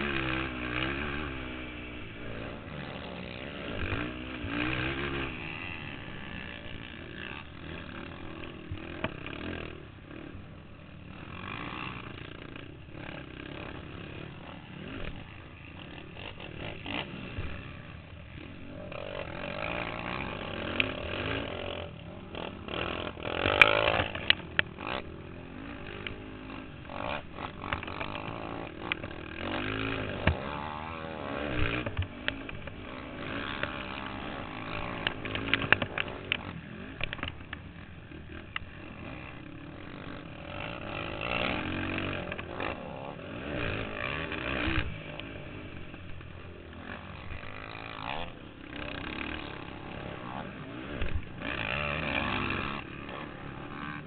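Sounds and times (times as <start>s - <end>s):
quad engine revving: 0.0s - 54.0s.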